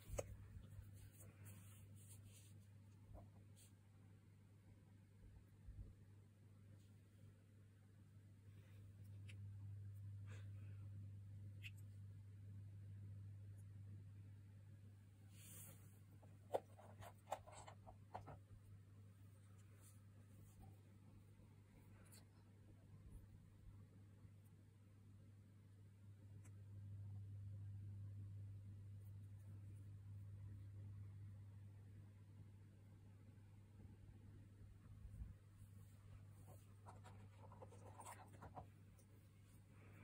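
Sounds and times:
soft scratchy rustles and clicks: 0.0 - 3.9, 15.3 - 23.2, 34.8 - 40.0.

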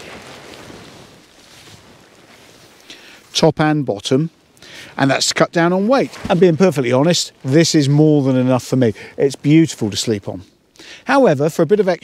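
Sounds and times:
wind on microphone: 0.0 - 2.8.

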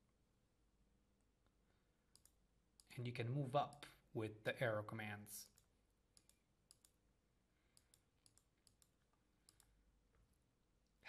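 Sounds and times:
computer mouse and key clicks: 2.1 - 2.9, 5.4 - 7.0, 7.7 - 9.8.

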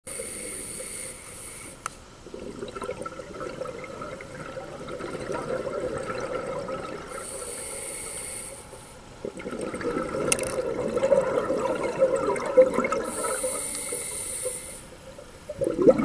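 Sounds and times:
regulator hissing inhale: 0.1 - 2.0, 7.1 - 9.0, 13.0 - 15.0
bubbling exhaust underwater: 2.2 - 16.0.

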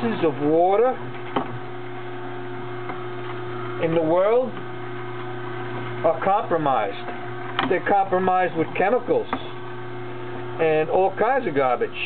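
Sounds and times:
juicer motor humming: 0.0 - 12.0.

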